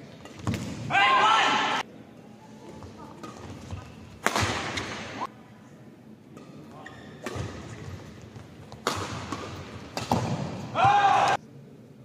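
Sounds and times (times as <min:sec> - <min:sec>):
player shouting: 0:00.9 - 0:01.8, 0:10.7 - 0:11.4
racket hitting shuttlecock: 0:03.2 - 0:05.2, 0:07.2 - 0:07.9, 0:08.7 - 0:11.4.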